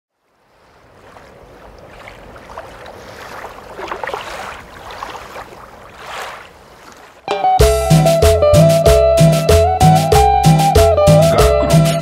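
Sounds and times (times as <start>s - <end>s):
rushing water: 0.1s - 9.4s
wind: 0.1s - 12.0s.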